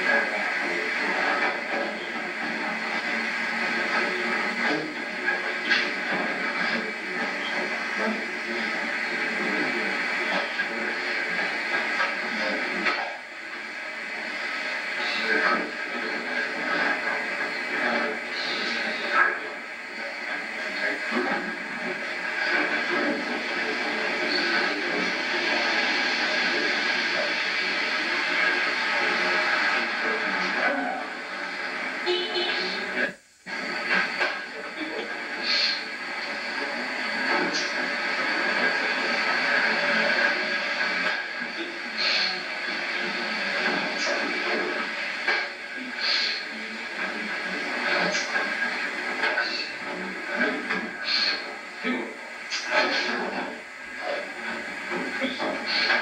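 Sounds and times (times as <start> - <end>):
muffled indistinct talk: 0.0 - 56.0
tape hiss: 0.0 - 56.0.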